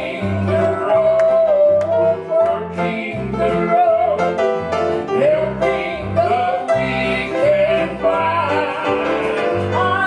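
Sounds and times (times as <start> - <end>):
grand piano accompaniment: 0.0 - 10.0.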